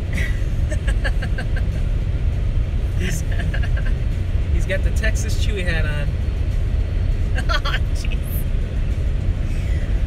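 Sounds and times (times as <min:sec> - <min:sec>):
road and engine rumble in car: 0:00.0 - 0:10.0.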